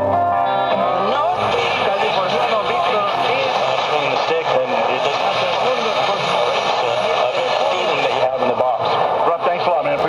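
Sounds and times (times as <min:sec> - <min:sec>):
radio static and hiss: 0:01.0 - 0:10.0
voice on radio: 0:01.1 - 0:10.0.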